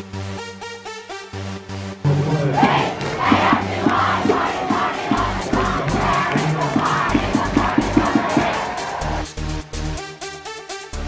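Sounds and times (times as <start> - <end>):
stadium crowd cheering and shouting: 2.1 - 9.6
steady low drum beat: 2.4 - 9.3.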